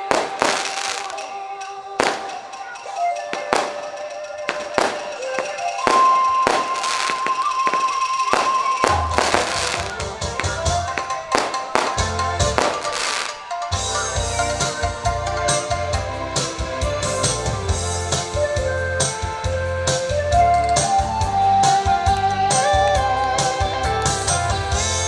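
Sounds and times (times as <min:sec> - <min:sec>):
firecrackers banging: 0:00.0 - 0:24.8
stage music with held tones: 0:00.0 - 0:25.0
backing track with deep bass beat: 0:02.0 - 0:25.0.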